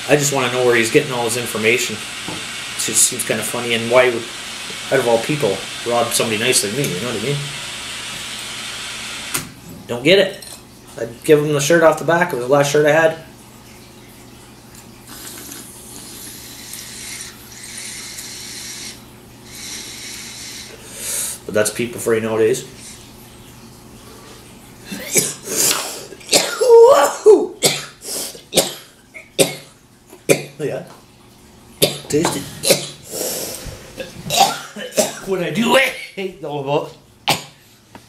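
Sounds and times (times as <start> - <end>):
torch shutoff click: 8.1 - 9.6
hissing exhale: 15.1 - 21.5, 33.0 - 34.0
man coughing harshly: 24.9 - 28.0, 34.0 - 35.3.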